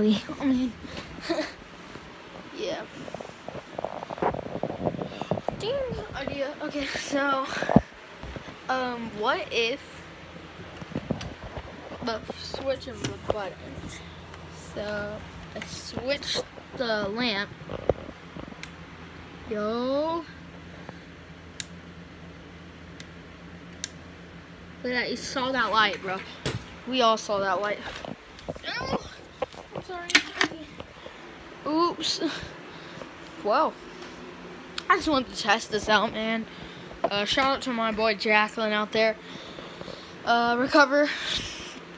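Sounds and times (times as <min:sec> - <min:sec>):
electric fan humming: 0:00.0 - 0:41.9.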